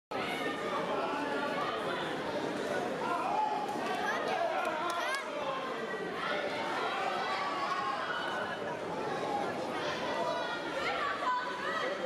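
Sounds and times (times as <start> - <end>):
babble of overlapping voices: 0.1 - 12.0.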